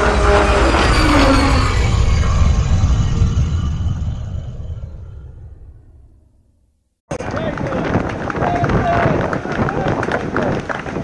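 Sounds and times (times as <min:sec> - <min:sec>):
deep rumbling cinematic swell: 0:00.0 - 0:06.6.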